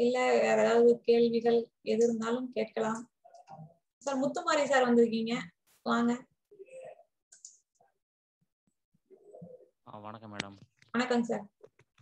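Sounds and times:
person speaking: 9.1s - 10.9s.

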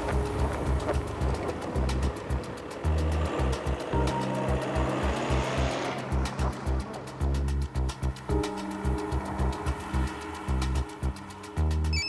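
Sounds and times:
pulsing bass line: 0.0s - 12.0s
ticking beat: 0.0s - 12.0s
whooshing swell: 0.0s - 12.0s.

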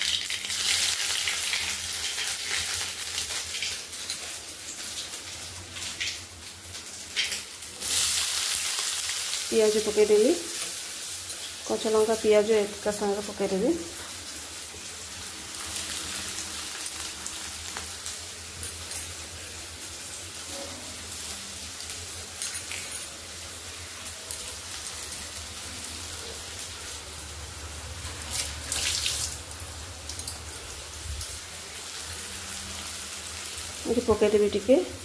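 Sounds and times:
cooking oil sizzling: 0.0s - 35.0s.

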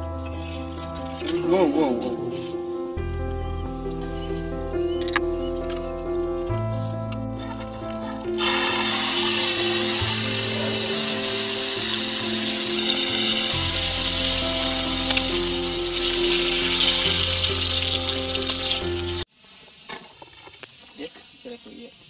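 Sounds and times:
background music with low bass: 0.0s - 19.3s
chilies sizzling in oil: 7.4s - 22.0s.

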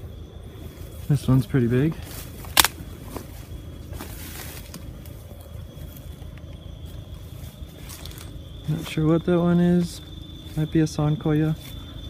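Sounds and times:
footsteps through weeds and leaves: 0.6s - 12.0s
thin steady high tone: 3.3s - 12.0s.

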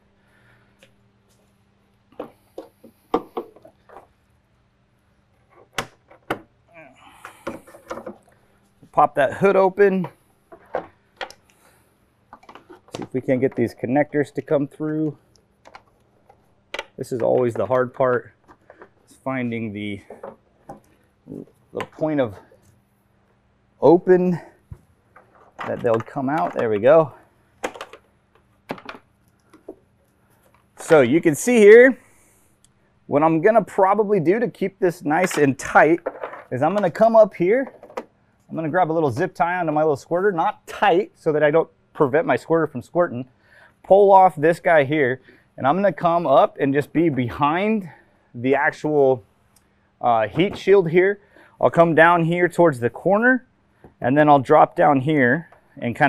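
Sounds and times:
plastic connectors clicking and rattling: 27.6s - 29.8s.

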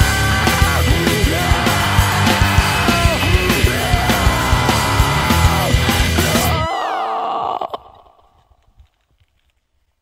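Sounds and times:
rock band playing: 0.0s - 6.7s.

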